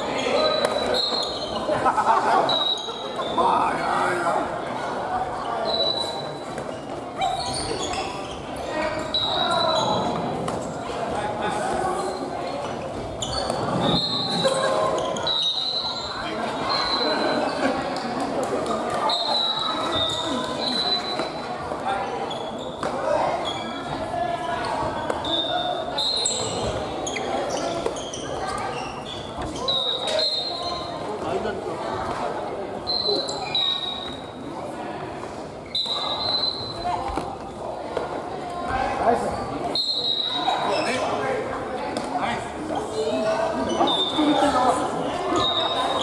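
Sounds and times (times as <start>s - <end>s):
sneakers squeaking on wooden floor: 0.0s - 1.8s, 5.4s - 10.9s, 11.6s - 24.0s, 24.6s - 31.3s, 32.8s - 34.5s, 35.5s - 37.6s, 39.2s - 41.2s, 42.8s - 46.0s
shoes squeaking on wooden floor: 5.6s - 10.7s, 24.6s - 31.0s.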